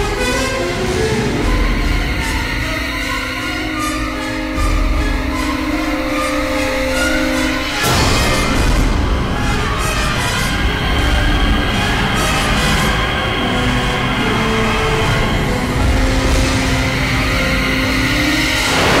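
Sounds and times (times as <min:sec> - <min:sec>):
tense dramatic score: 0:00.0 - 0:19.0.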